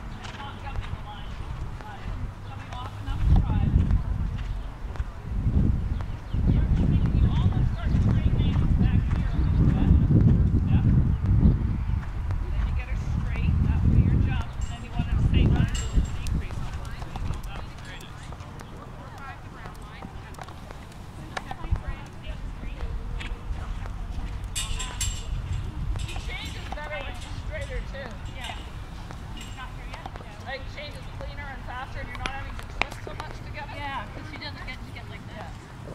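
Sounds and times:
horse hoofbeats on sand: 0.0 - 35.9
people talking quietly: 0.0 - 35.9
low rumble: 1.5 - 17.5.

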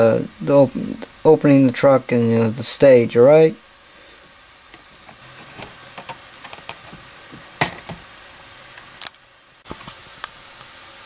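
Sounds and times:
faint steady hiss: 0.0 - 11.0.

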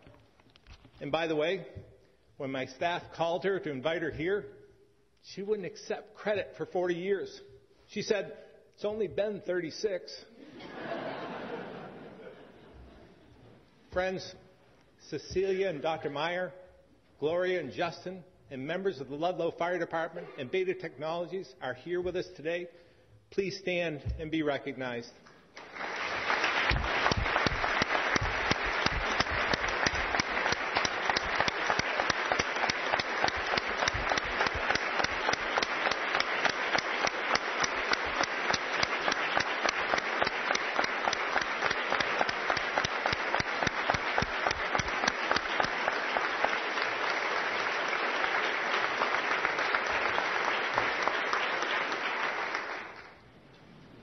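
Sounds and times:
applause from a large crowd: 25.5 - 53.2.

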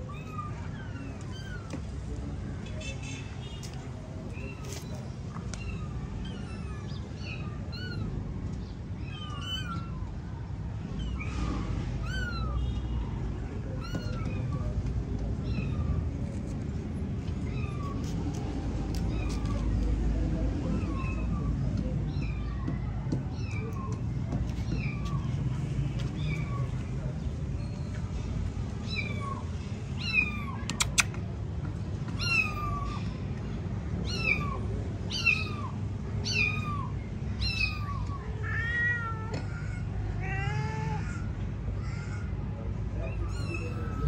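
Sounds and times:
kitten mewing: 30.0 - 31.2
sharp click: 30.7 - 31.2.

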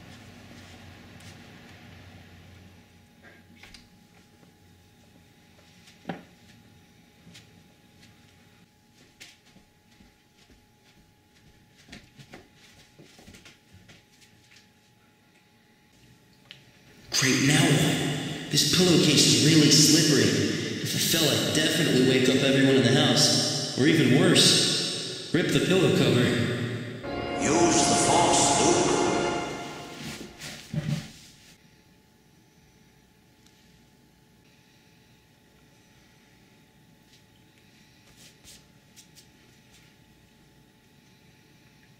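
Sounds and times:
man talking: 17.1 - 24.7, 25.3 - 26.5, 27.1 - 29.9
sustained music: 27.0 - 30.4.

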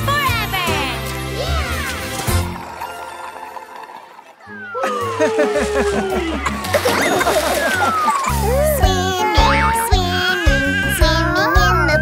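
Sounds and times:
cartoon soundtrack music: 0.0 - 12.0.

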